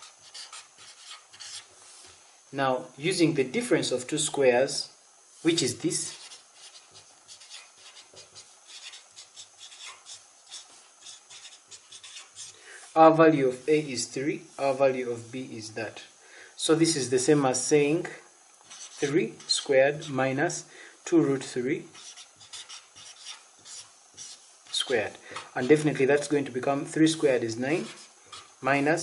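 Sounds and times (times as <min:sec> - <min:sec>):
marker pen scratching on paper: 0:00.0 - 0:01.7, 0:06.0 - 0:12.6, 0:18.6 - 0:20.2, 0:21.9 - 0:24.9, 0:27.8 - 0:28.5.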